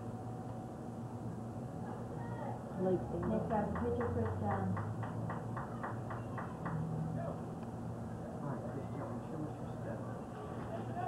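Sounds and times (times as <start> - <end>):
low steady hum: 0.0 - 11.0
rhythmic ticking: 3.2 - 6.9.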